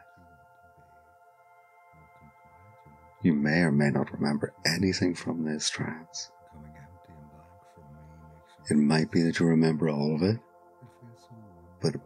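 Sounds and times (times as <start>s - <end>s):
synthesizer drone: 0.0s - 12.0s.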